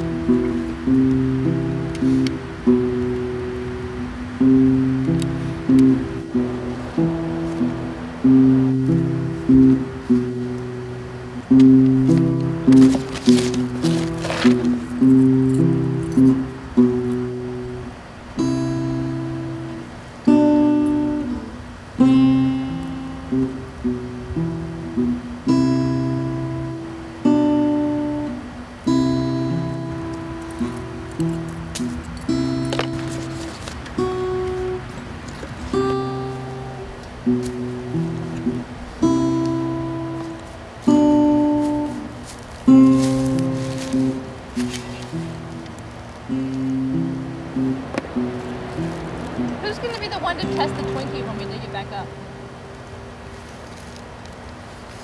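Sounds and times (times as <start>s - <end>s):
acoustic guitar music: 0.0s - 55.0s.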